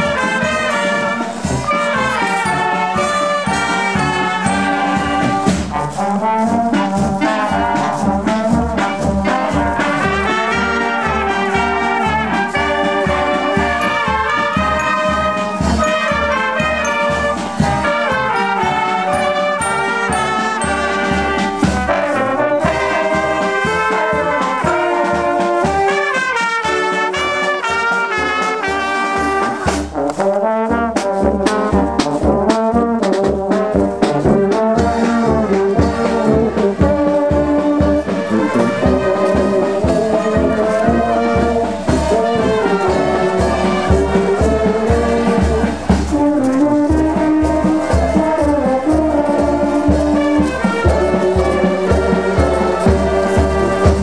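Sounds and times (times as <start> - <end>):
marching wind band playing: 0.0 - 54.0.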